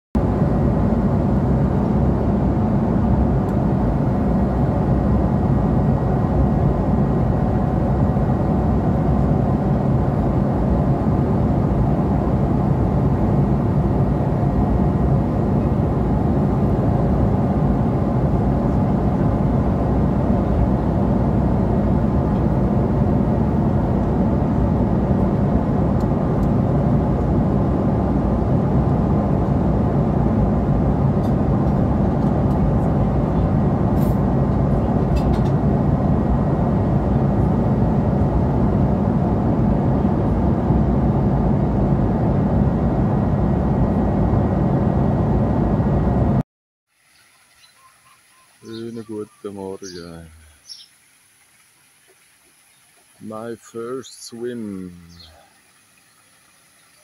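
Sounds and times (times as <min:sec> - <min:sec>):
jet engine cabin drone: 0:00.2 - 0:46.4, 0:53.2 - 0:55.4.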